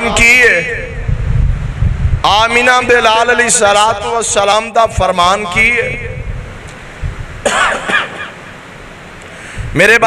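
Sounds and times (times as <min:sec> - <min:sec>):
man clearing his throat: 0:07.4 - 0:08.4.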